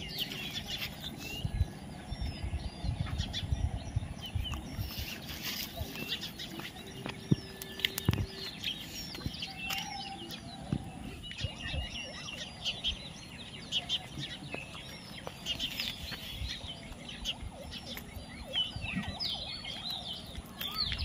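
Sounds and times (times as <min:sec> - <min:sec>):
birds chirping: 0:00.0 - 0:21.0.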